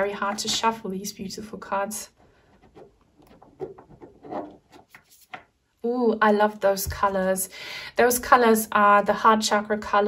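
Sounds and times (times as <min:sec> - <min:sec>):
cards being shuffled: 0:02.6 - 0:05.6.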